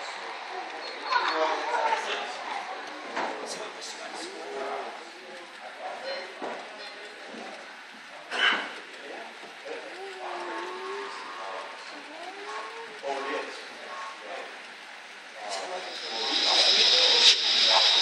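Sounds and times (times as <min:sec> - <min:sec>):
people talking indistinctly: 0:00.9 - 0:18.0.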